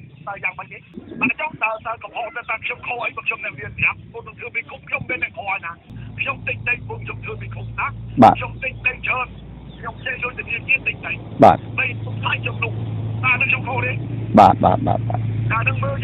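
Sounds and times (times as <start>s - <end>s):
steady low hum: 0.0s - 16.0s
fast speech narration: 0.3s - 16.0s.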